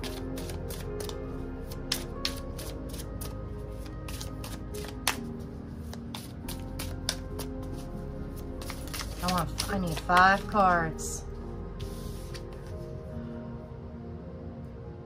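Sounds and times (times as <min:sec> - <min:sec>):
cards being shuffled: 0:00.0 - 0:01.2, 0:01.8 - 0:10.6
background music: 0:00.0 - 0:15.0.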